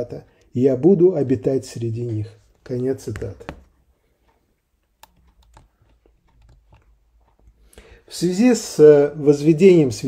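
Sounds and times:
faint clicks: 2.5s - 8.2s.

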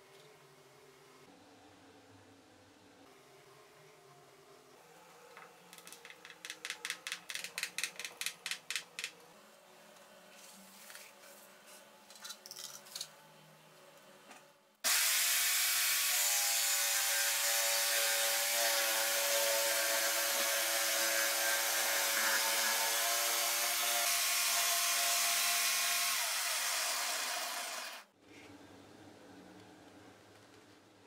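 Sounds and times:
jigsaw cutting board: 14.9s - 28.1s.

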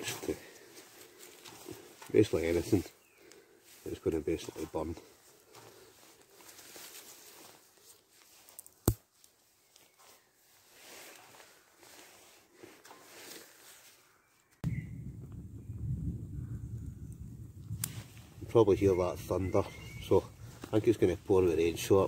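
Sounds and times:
twigs rustling: 0.0s - 14.6s, 17.6s - 22.0s
distant thunder rumble: 14.6s - 17.7s.

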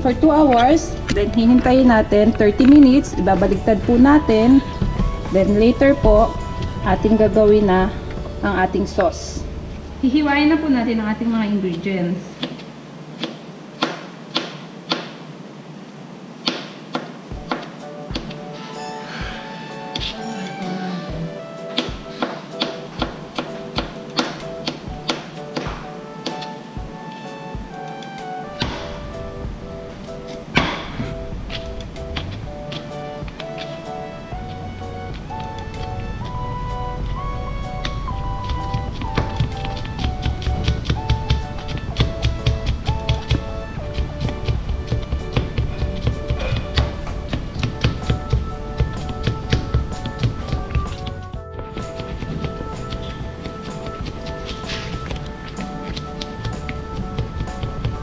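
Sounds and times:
background music: 0.0s - 12.4s, 16.9s - 58.0s.

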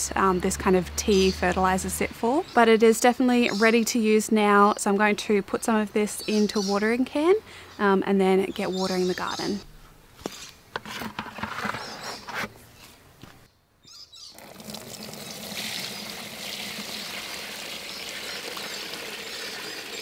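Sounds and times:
liquid splashing into a tub: 14.4s - 20.0s.

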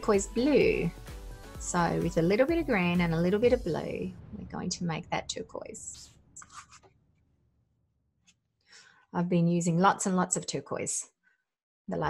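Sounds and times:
paintbrush scratching on palette: 6.4s - 6.9s.

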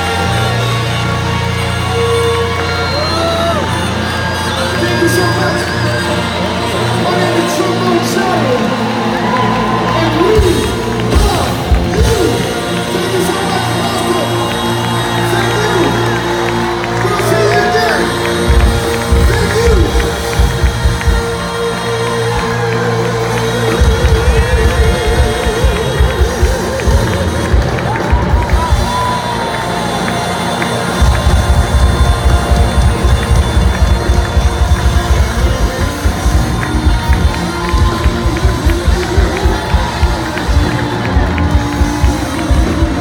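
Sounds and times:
crowd cheering: 0.0s - 43.0s
live band playing loudly: 0.0s - 43.0s
driving kick drum beat: 10.1s - 16.3s, 16.9s - 29.6s, 30.9s - 43.0s.

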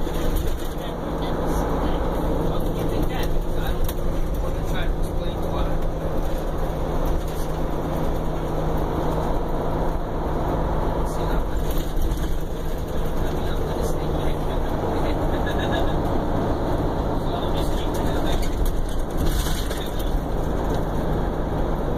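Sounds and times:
diesel engine droning: 0.0s - 21.9s
road and tyre noise: 0.0s - 21.9s.

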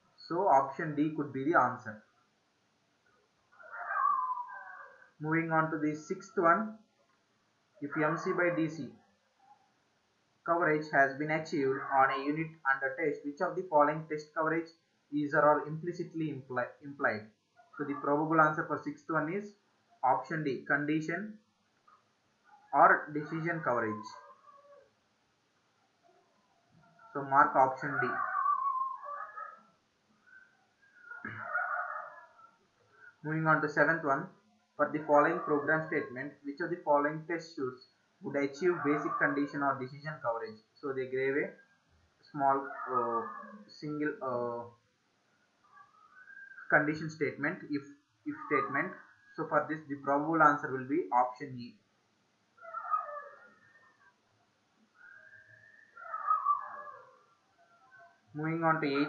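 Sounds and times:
high animal cry: 3.6s - 5.1s, 11.5s - 12.3s, 22.7s - 24.8s, 26.8s - 33.2s, 38.7s - 39.7s, 42.5s - 43.7s, 45.7s - 46.7s, 48.3s - 49.2s, 52.6s - 54.1s, 55.0s - 58.2s.

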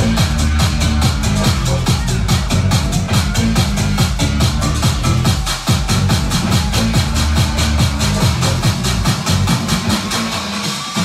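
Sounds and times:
sliding bass line: 0.0s - 10.6s
dance remix with heavy bass: 0.0s - 11.0s
ticking hi-hats: 0.0s - 11.0s.

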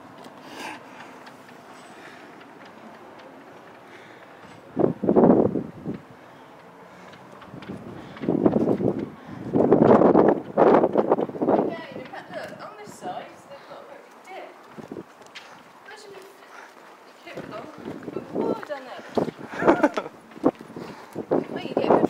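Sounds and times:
wind on microphone: 4.4s - 6.2s, 7.1s - 13.4s, 14.6s - 15.2s, 17.3s - 22.0s.

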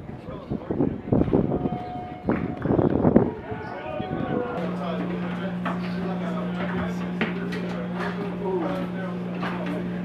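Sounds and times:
people talking at once: 0.0s - 10.0s
steady low hum: 0.0s - 10.0s.

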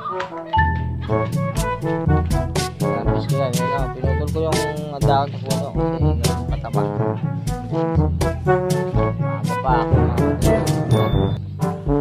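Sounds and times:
jazzy tune with brass: 0.0s - 12.0s.

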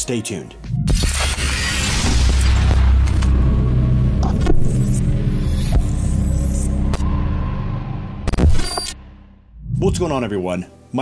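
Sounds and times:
low rumbling drone: 0.6s - 10.3s.

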